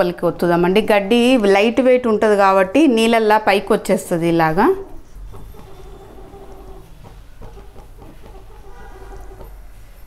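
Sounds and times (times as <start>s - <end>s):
chicken clucking: 5.3s - 9.6s.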